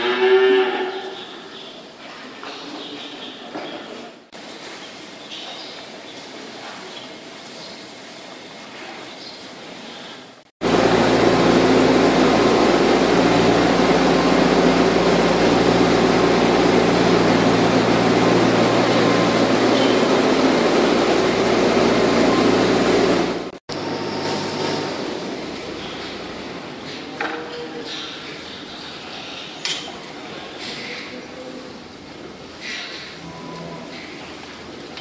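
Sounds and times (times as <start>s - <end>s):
quiet barn sound: 0.0s - 10.2s, 25.4s - 35.0s
machine droning hum: 10.6s - 34.8s.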